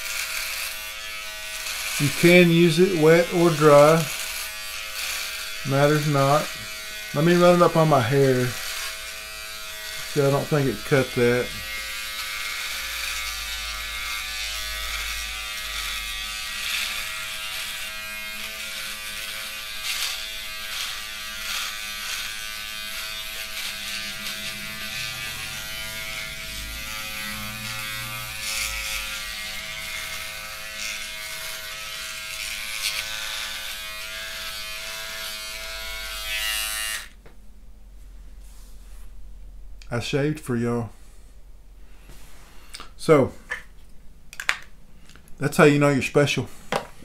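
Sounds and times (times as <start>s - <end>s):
electric shaver buzzing: 0.0s - 37.2s.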